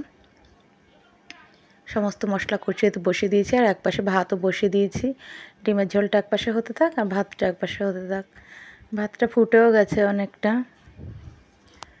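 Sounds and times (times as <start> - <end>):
woman speaking: 1.9 - 11.2
faint low rumble: 10.8 - 11.5.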